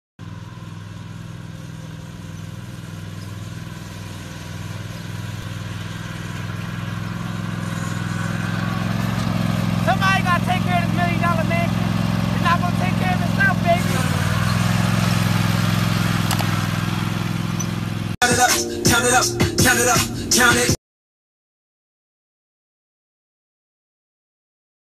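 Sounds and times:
riding mower engine running: 0.2s - 20.8s
man talking: 9.8s - 14.3s.

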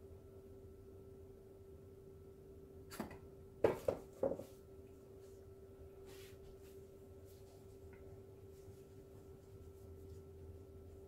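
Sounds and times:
wooden frame knocking on table: 3.6s - 4.5s.

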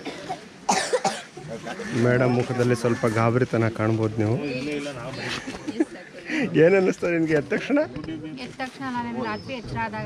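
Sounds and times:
person coughing: 0.0s - 1.3s.

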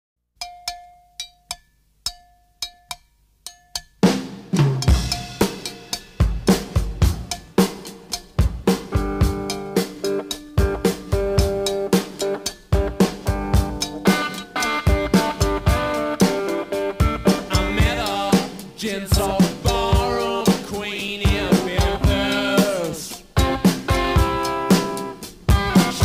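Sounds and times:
separate drum hits: 4.0s - 26.0s
band playing theme music: 4.9s - 26.0s.

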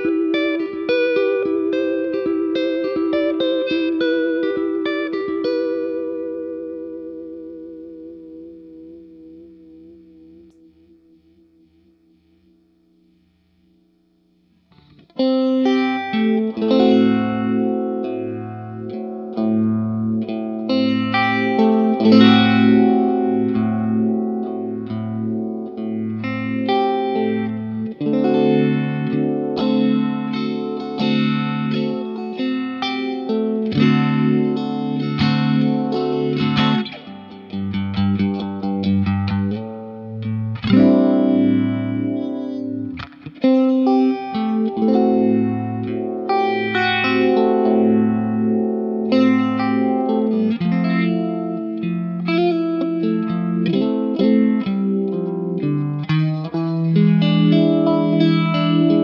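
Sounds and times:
electric guitar riff with vibrato: 0.0s - 13.1s, 14.6s - 59.0s.

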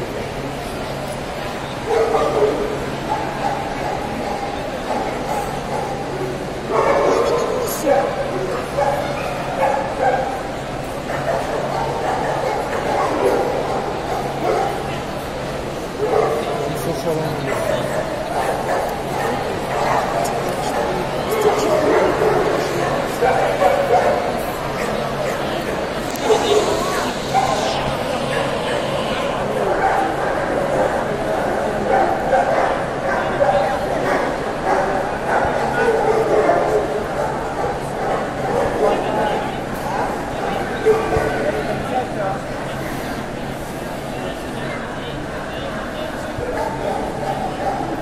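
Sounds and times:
indistinct crowd chatter: 0.0s - 48.0s.

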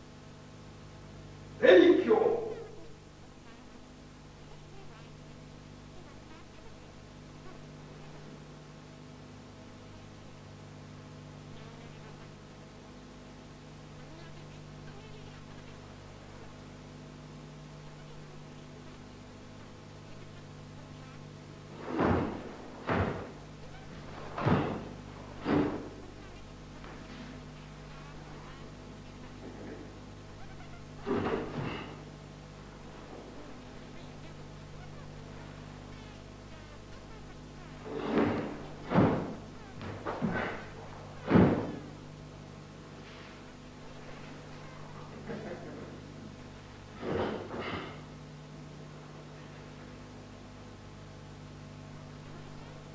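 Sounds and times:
low hum with hiss: 0.0s - 52.9s.

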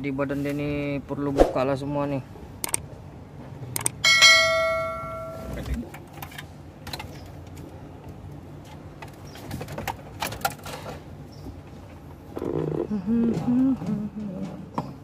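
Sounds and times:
bright bell chime: 4.1s - 5.6s.

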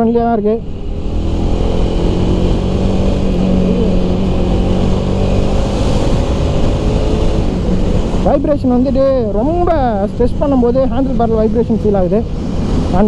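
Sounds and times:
motorcycle engine running: 0.0s - 11.6s
road and wind noise: 0.0s - 13.0s.

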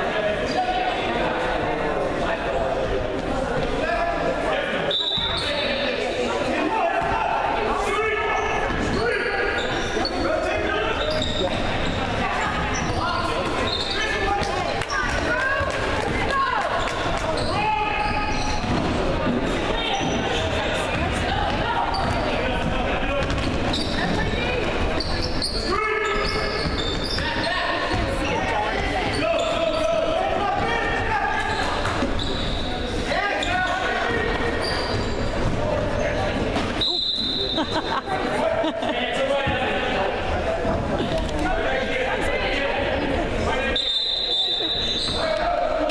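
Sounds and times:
spectators chattering and calling out: 0.0s - 45.9s
sneakers squeaking: 4.8s - 7.2s, 7.9s - 38.3s, 42.8s - 45.9s
referee's whistle: 4.9s - 5.6s, 36.8s - 37.6s, 43.7s - 45.2s.

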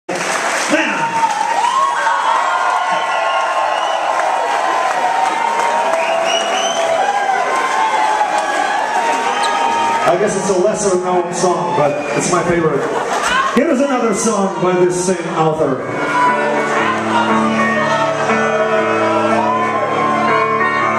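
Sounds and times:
clapping: 0.1s - 9.2s
audience cheering and shouting: 0.6s - 20.9s.

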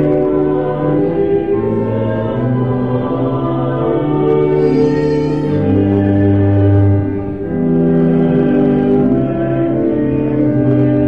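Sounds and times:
organ accompaniment: 0.0s - 11.0s
voices singing a hymn: 0.0s - 11.0s.

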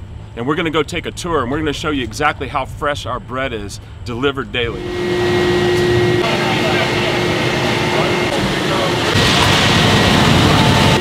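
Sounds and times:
bakery machinery noise: 0.5s - 11.0s
thin high whine: 4.7s - 11.0s.

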